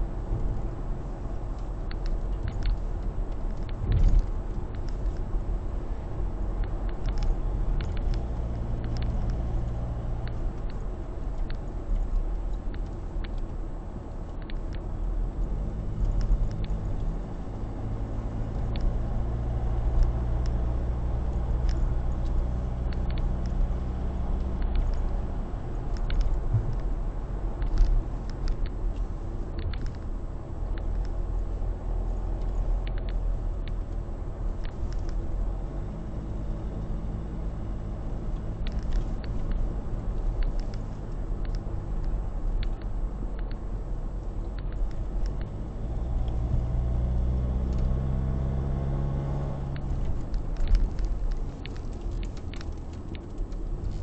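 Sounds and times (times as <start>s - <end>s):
car engine hum: 0.0s - 54.0s
tyre road noise: 0.0s - 54.0s.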